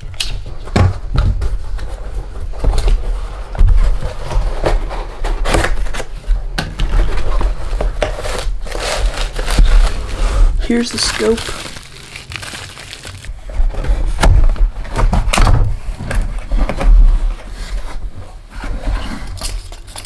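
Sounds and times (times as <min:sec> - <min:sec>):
plastic wrapping rustling: 0:00.0 - 0:20.0
cardboard scraping and tearing: 0:01.6 - 0:06.2, 0:06.9 - 0:19.4.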